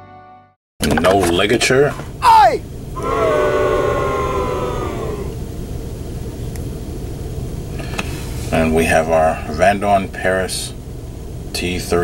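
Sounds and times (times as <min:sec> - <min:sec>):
low rumble: 0:02.6 - 0:07.8.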